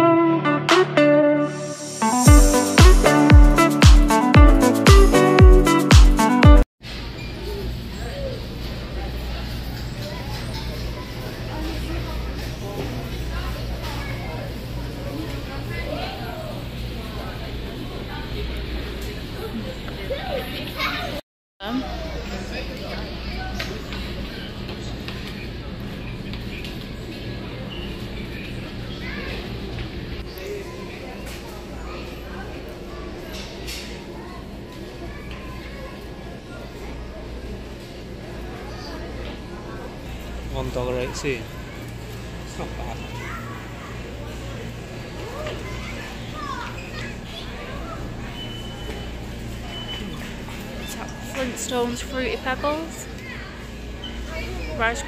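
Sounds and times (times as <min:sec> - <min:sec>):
distant children's voices: 0:07.2 - 0:55.0.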